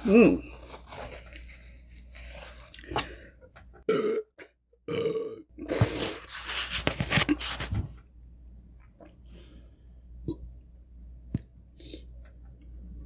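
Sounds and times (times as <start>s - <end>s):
woman burping: 3.9s - 4.3s, 4.9s - 5.4s.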